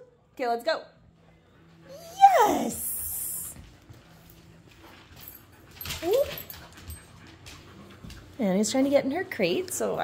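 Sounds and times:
dog whining: 1.9s - 3.5s.

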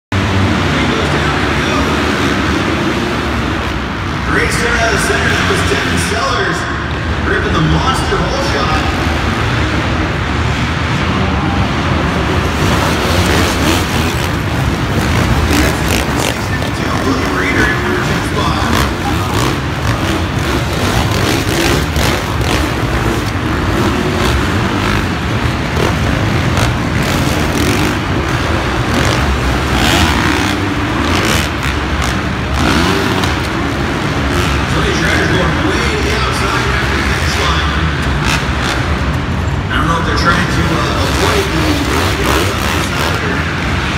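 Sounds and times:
motocross bike engines revving: 0.1s - 43.9s
announcer over public address: 4.2s - 9.0s, 15.9s - 19.6s, 34.6s - 38.0s, 39.7s - 43.6s.

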